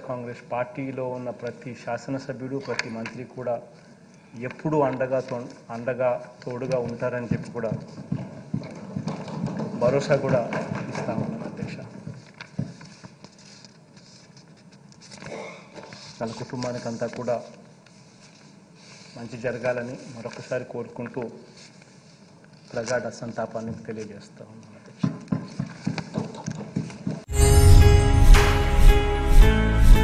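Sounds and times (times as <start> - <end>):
soft ticks and crinkles: 2.5 - 25.3
paper sheets rustling: 4.6 - 24.1
hands thumping wooden desks: 7.6 - 11.4.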